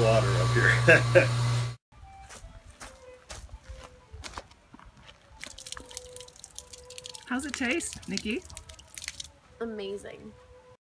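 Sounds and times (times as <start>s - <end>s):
footsteps on dirt path: 2.0s - 6.2s
water trickling from fountain: 5.4s - 9.4s.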